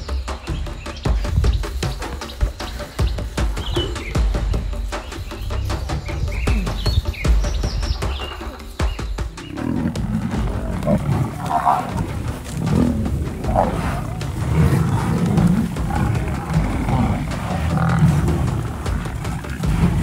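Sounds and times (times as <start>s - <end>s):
birds chirping: 0.0s - 20.0s
lion growling and roaring: 2.7s - 4.6s, 7.9s - 20.0s.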